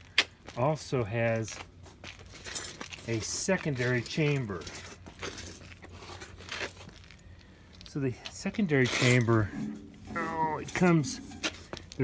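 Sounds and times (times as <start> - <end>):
low steady background hum: 0.0 - 12.0.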